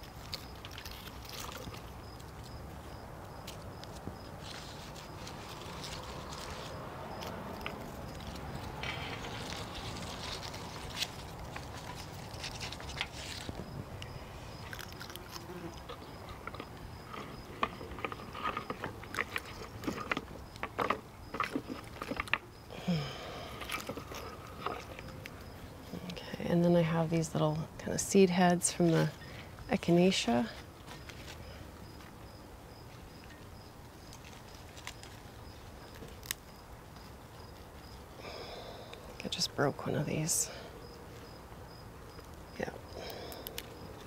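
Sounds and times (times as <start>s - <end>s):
dry stems crackling and rustling: 0.0s - 26.3s, 27.0s - 40.5s, 42.0s - 44.0s
outdoor background hiss: 0.0s - 44.0s.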